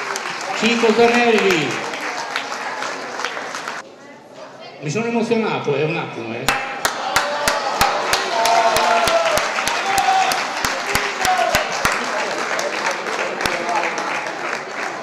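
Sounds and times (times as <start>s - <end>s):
audience applauding: 0.0s - 3.8s, 6.5s - 15.0s
close hands clapping: 0.0s - 3.8s, 6.5s - 15.0s
murmur of crowd voices: 0.0s - 15.0s.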